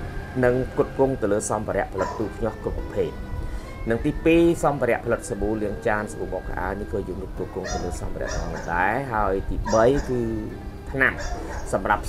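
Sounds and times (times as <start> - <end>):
soft background music: 0.0 - 12.0
man speaking quickly: 0.4 - 3.2, 3.8 - 12.0.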